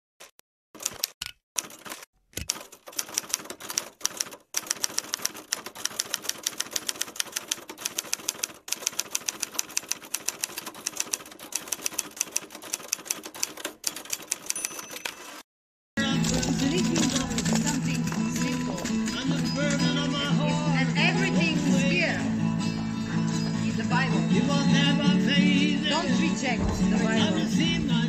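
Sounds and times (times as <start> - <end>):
typewriter keystroke clicks: 0.2 - 15.4.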